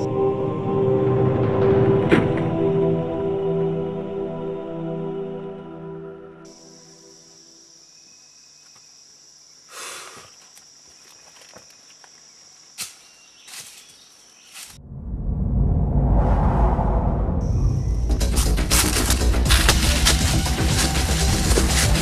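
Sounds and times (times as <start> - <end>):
film soundtrack music: 0.0 - 7.7, 14.8 - 22.0
high-pitched insect chirring: 6.5 - 14.8
loud low rumble: 14.8 - 19.9.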